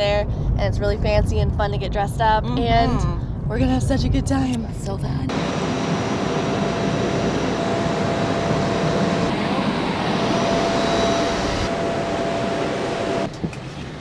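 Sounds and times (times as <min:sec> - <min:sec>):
jet turbine roar with whine: 0:05.3 - 0:14.0.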